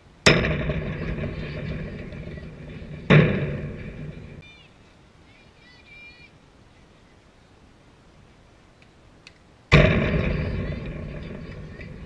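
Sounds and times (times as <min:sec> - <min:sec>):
ball hitting metal fence: 0:00.3 - 0:04.4
fence rattling: 0:00.3 - 0:04.4.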